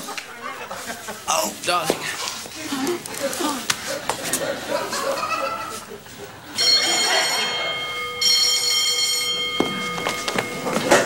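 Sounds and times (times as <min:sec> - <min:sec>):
electric school bell ringing: 0:06.5 - 0:11.0.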